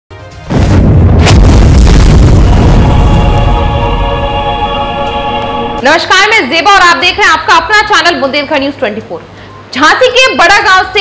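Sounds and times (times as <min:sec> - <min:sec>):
cinematic music: 0:00.1 - 0:05.8
whoosh: 0:00.5 - 0:04.4
deep boom rumbling: 0:00.5 - 0:04.8.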